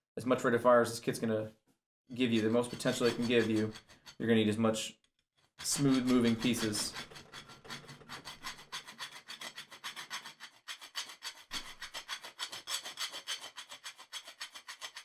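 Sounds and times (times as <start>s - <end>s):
hand file rasping: 2.2s - 4.2s, 5.6s - 15.0s.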